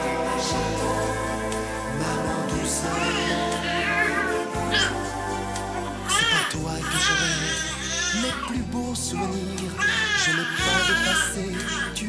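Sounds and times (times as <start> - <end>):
soft background music: 0.0 - 12.0
baby crying: 2.9 - 5.4, 6.0 - 12.0.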